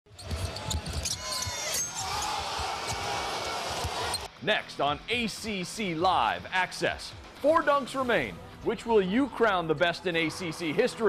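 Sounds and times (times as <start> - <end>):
sneakers squeaking: 0.1 - 4.3
arena crowd noise: 0.1 - 11.0.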